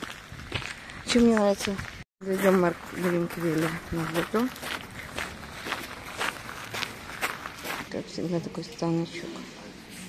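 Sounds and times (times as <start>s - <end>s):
footsteps on gravel: 0.0s - 8.2s.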